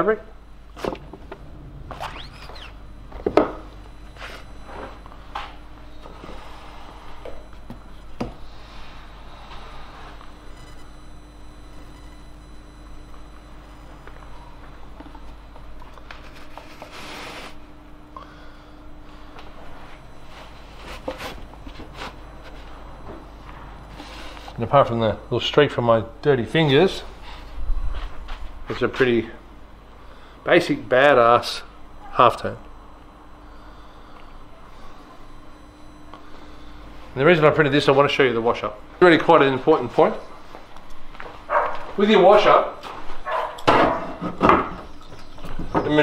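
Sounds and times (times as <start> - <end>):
faint steady hum: 0.0 - 46.0.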